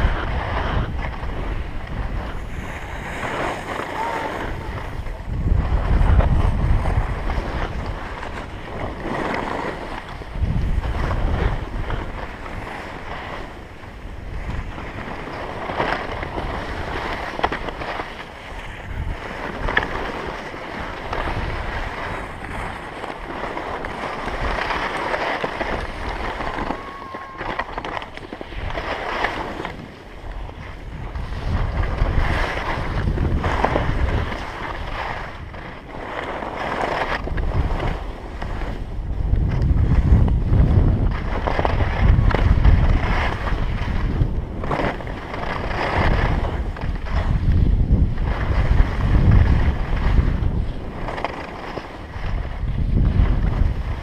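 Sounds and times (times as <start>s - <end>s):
skis scraping over snow: 0.0s - 54.0s
wind buffeting microphone: 0.0s - 54.0s.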